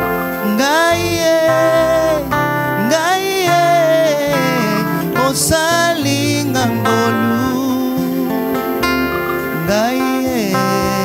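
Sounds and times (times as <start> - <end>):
keyboard and band accompaniment: 0.0 - 11.0
man singing worship song: 0.0 - 11.0.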